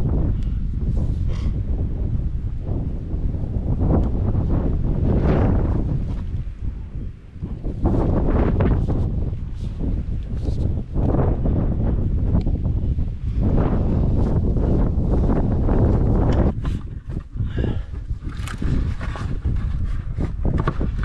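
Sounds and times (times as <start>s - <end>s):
wind buffeting microphone: 0.0s - 21.0s
hands knocking and scraping plastic: 16.3s - 21.0s.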